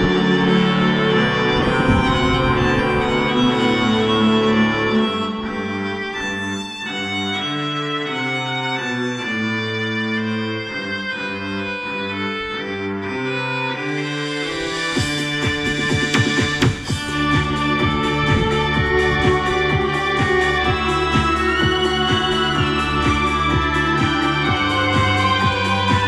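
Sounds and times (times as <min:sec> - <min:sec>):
bowed strings music: 0:00.0 - 0:26.0
beat with hissy percussion: 0:14.0 - 0:26.0.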